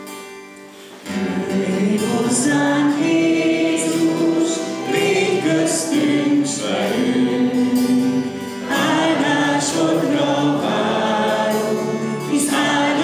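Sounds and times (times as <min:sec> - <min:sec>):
congregation singing a hymn: 0:01.1 - 0:13.0.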